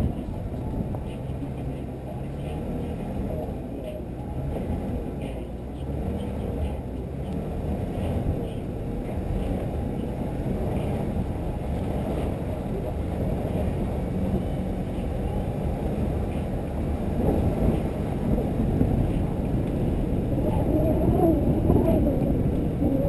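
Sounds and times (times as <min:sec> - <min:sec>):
vehicle running noise: 0:00.0 - 0:23.0
wind rumble on microphone: 0:00.0 - 0:23.0.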